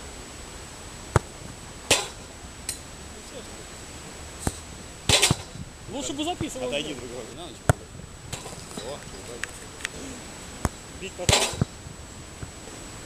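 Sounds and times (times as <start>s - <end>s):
football being kicked: 1.1s - 2.1s, 4.4s - 5.7s, 6.3s - 6.7s, 7.7s - 8.6s, 10.6s - 11.8s.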